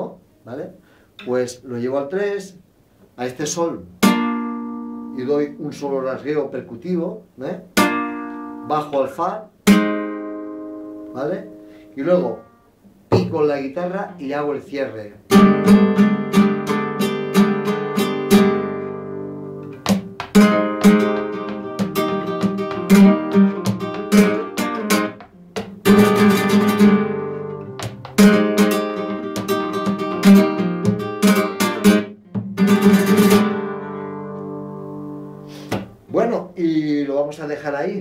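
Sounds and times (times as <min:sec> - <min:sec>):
flamenco guitar strumming: 0:03.8 - 0:05.8, 0:07.6 - 0:14.3, 0:15.2 - 0:36.3.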